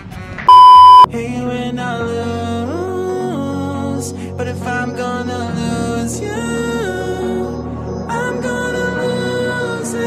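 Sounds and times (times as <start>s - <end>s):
censor bleep: 0.5s - 1.1s.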